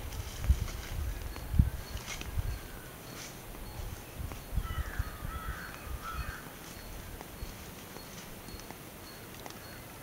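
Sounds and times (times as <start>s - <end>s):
bird calling harshly: 4.5s - 7.0s.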